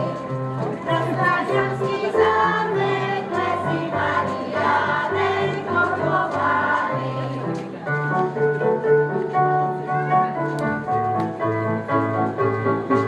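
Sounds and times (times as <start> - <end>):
children singing: 0.9 - 7.2.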